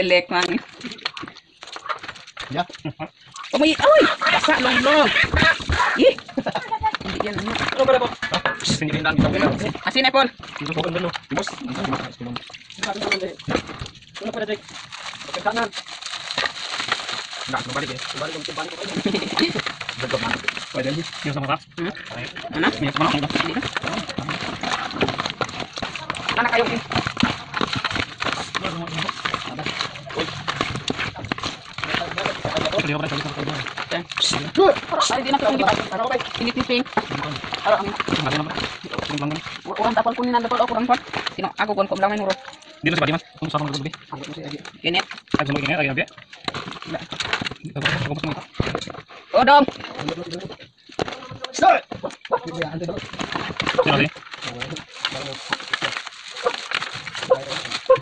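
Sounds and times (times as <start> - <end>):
people talking: 0.0 - 1.1, 2.5 - 13.4, 17.5 - 25.1, 25.9 - 26.9, 28.6 - 30.4, 31.2 - 46.1, 53.8 - 55.5
brush scrubbing crabs: 3.3 - 8.3, 10.4 - 43.9, 52.1 - 58.0.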